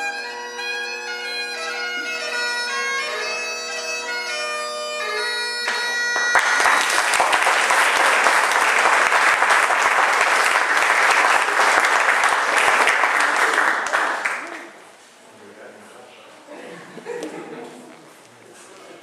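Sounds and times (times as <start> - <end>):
bagpipes playing: 0.0 - 11.0
audience applause: 5.7 - 14.8.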